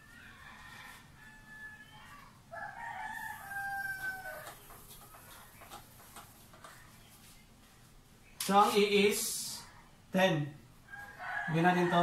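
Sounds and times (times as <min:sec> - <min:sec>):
rooster crowing: 0:00.0 - 0:04.6, 0:10.9 - 0:12.0.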